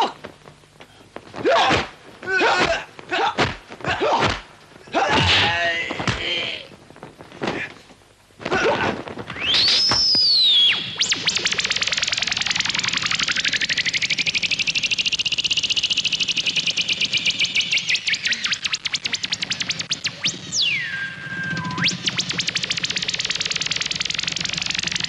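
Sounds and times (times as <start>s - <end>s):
electronic tone sweeping: 9.3s - 25.0s
pulsing electronic whir: 10.4s - 25.0s.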